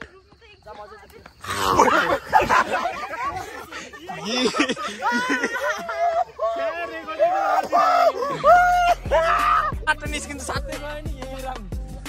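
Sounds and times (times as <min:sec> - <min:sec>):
man shouting loudly: 0:05.8 - 0:11.6.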